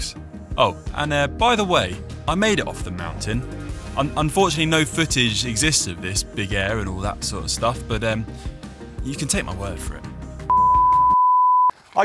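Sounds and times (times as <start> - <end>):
background music: 0.0 - 11.2
high electronic bleep: 10.5 - 11.7.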